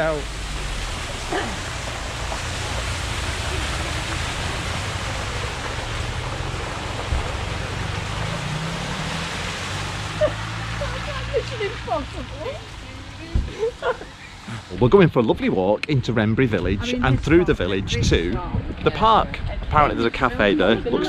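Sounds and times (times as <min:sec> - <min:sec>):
car engine hum: 0:00.0 - 0:15.0
tyres swishing through water: 0:00.0 - 0:15.2.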